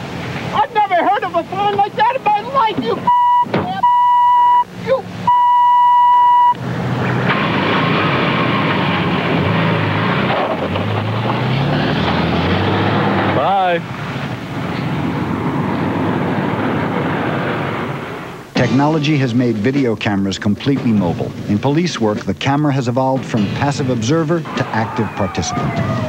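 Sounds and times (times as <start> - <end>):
highway traffic rushing: 0.0 - 26.0
vehicles passing: 0.0 - 26.0
censor bleep tone: 3.1 - 6.6.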